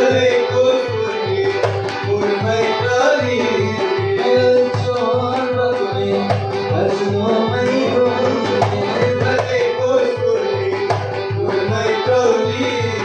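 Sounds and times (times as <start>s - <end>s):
sustained melody line: 0.0s - 13.0s
clay pot and hand drum beating: 1.3s - 13.0s.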